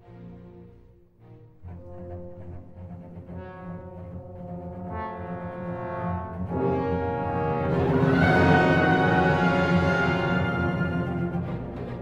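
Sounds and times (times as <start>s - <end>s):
brass: 0.0s - 12.0s
orchestra holding a chord: 6.5s - 11.5s.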